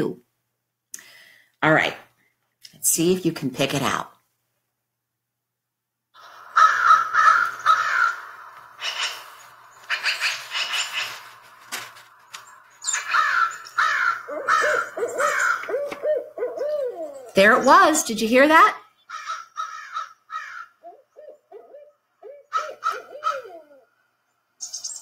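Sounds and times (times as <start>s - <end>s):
owl hooting: 6.2s - 17.8s, 19.0s - 24.0s
birds calling: 6.2s - 25.0s.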